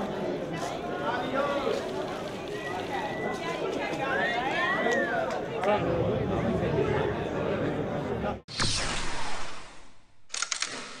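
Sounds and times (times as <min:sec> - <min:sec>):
whoosh: 0:08.5 - 0:10.2
camera shutter clicks: 0:10.3 - 0:11.0.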